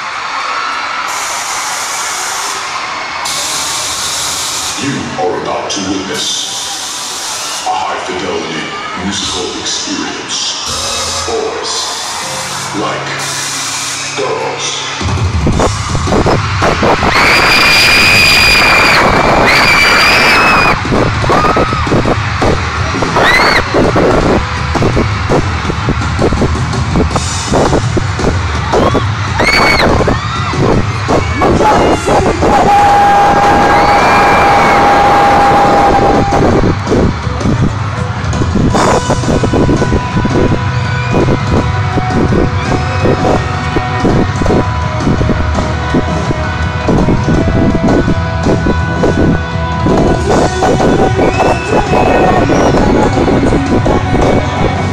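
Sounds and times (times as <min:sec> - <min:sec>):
crowd screaming: 0:00.0 - 0:05.2, 0:05.8 - 0:54.9
live rock music: 0:10.5 - 0:54.9
pounding drum beat: 0:15.0 - 0:54.9.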